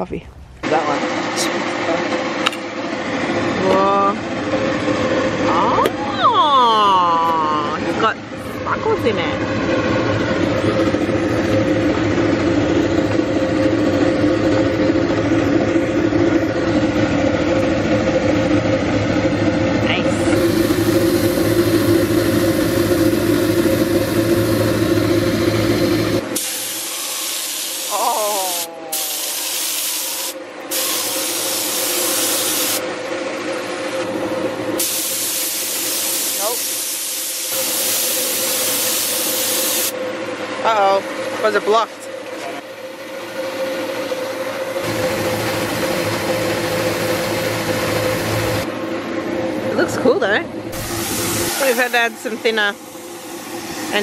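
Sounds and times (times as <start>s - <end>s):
steady machine hum: 0.0s - 54.0s
air spray gun hissing: 20.2s - 32.8s, 34.8s - 39.9s, 50.8s - 54.0s.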